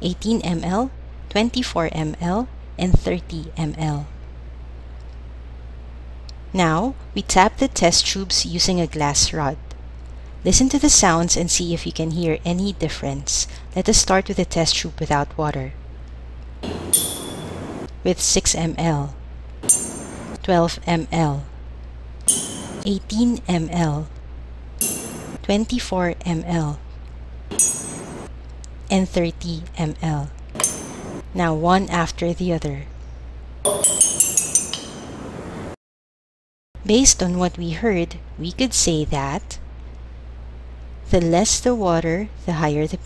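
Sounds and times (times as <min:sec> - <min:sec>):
glass rod tapping test tube: 0:16.6 - 0:17.9, 0:19.6 - 0:20.4, 0:22.3 - 0:22.9, 0:24.8 - 0:25.4, 0:27.5 - 0:28.3, 0:30.6 - 0:31.2, 0:33.7 - 0:35.2.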